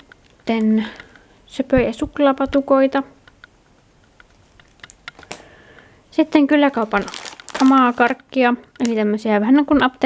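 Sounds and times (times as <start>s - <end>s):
cardboard box and plastic packets handled: 6.3s - 9.2s.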